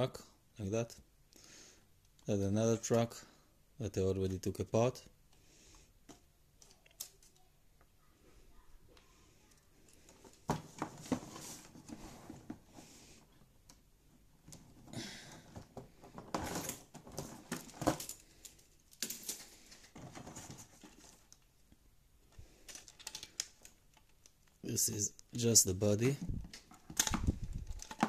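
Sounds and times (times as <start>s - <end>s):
plastic parts clicking: 6.0s - 7.5s, 22.3s - 24.6s, 26.4s - 28.0s.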